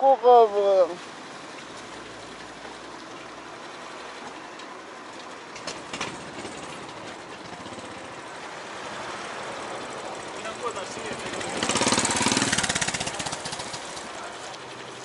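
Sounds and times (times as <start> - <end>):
road noise: 0.0 - 15.0
motor scooter engine: 4.2 - 15.0.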